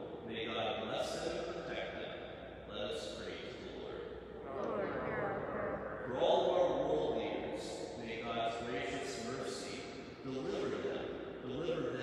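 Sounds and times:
man talking into a microphone: 0:00.0 - 0:02.1, 0:02.7 - 0:04.0, 0:05.9 - 0:12.0.

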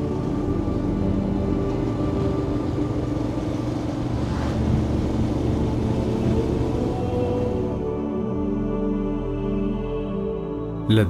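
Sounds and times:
motorcycle engine running: 0:00.0 - 0:07.6.

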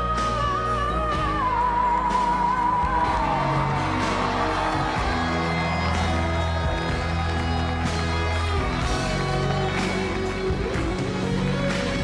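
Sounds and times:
live band playing pop ballad: 0:00.0 - 0:12.0.

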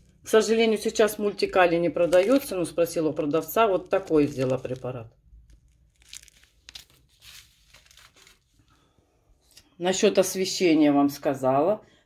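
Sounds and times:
plastic sachets crinkling: 0:01.7 - 0:08.8.

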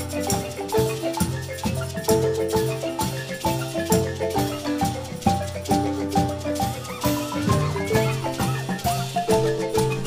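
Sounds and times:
marimba ensemble playing: 0:00.0 - 0:10.0.

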